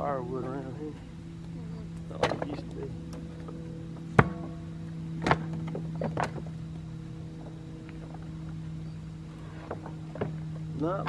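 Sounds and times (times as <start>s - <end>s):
low engine hum: 0.0s - 11.0s.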